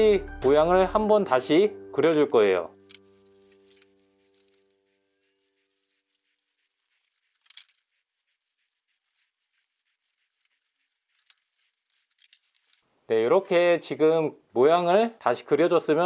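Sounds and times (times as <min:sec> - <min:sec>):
background music chord: 0:00.0 - 0:03.5
pencil and saw blade scratching wood: 0:02.9 - 0:12.8.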